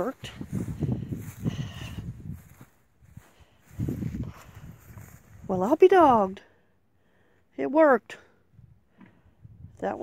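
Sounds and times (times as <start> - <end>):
footsteps on dry grass: 0.0 - 6.4.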